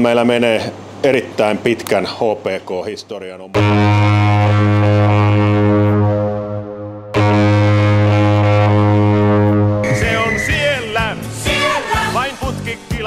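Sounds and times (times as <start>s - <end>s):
hockey goal horn blasts: 3.6s - 11.0s.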